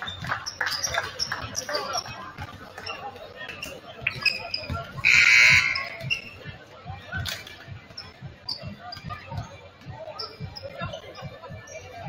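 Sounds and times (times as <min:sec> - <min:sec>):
sneaker squeaks: 0:00.0 - 0:12.0
voices in gym: 0:00.0 - 0:12.0.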